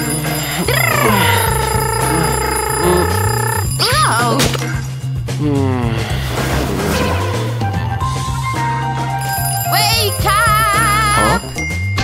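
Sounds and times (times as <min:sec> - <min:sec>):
background music: 0:00.0 - 0:12.0
man yawning: 0:00.2 - 0:03.8, 0:05.4 - 0:06.2.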